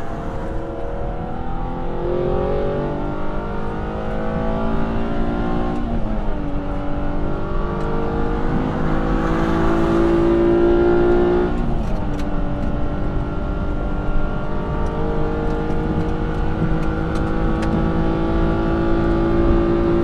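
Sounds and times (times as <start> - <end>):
car engine accelerating hard: 0.0 - 20.0.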